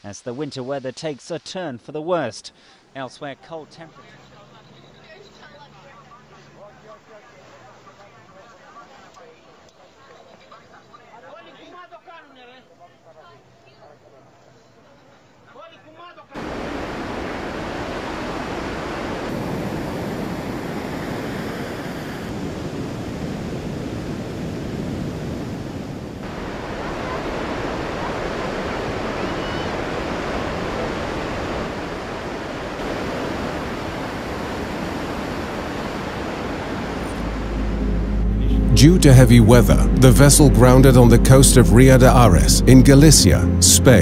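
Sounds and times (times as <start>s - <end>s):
wind: 16.4s - 38.1s
sea waves: 16.4s - 39.0s.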